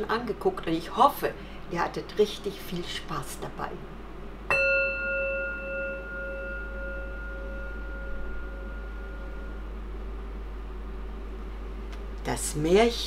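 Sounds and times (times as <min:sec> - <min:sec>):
metal chime ringing: 0:04.5 - 0:09.7.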